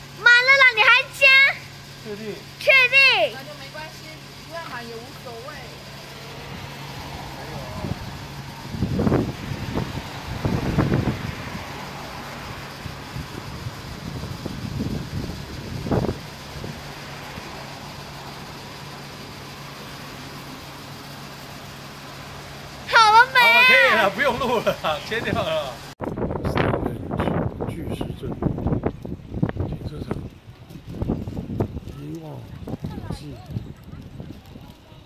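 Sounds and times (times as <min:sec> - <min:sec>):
road traffic passing: 0:00.0 - 0:35.0.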